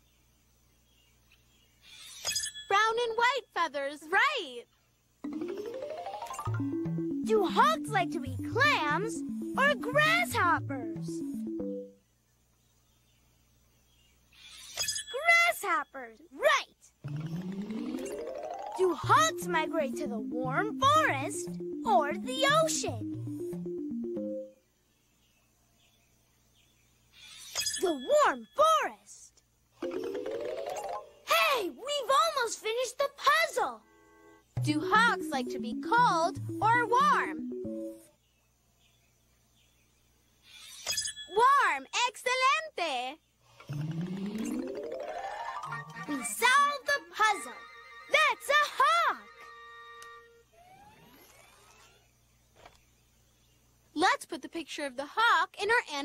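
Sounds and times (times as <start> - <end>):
cartoon sparkle sound effect: 5.2 - 11.9, 17.0 - 24.6, 27.6 - 28.4, 29.8 - 31.3, 34.7 - 38.1, 43.7 - 51.8
person speaking: 7.2 - 11.2, 18.8 - 23.1, 34.6 - 37.4, 45.8 - 49.3.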